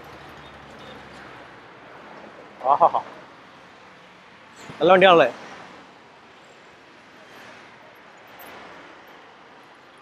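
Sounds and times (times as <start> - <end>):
traffic passing on road: 0.0 - 10.0.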